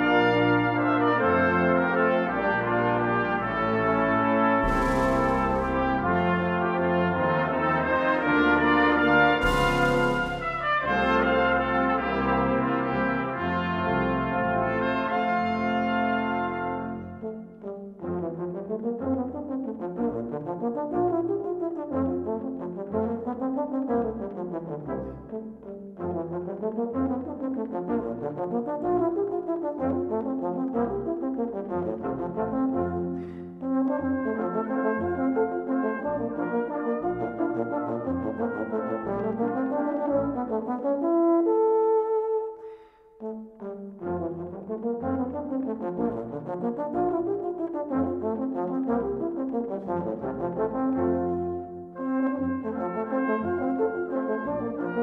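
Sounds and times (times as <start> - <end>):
low brass solo runs: 0.0 - 25.0
brass band playing: 0.0 - 55.0
cymbal crash: 4.6 - 5.9, 9.4 - 10.9.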